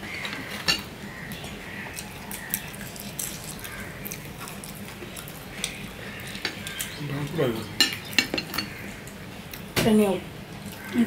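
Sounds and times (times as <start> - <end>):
ceramic dishes clinking: 7.8 - 8.8.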